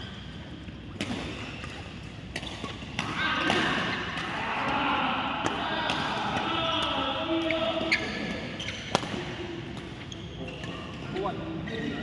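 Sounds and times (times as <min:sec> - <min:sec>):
racket hitting shuttlecock: 0:00.9 - 0:04.4, 0:07.8 - 0:10.0
shoes squeaking on court: 0:07.4 - 0:12.0.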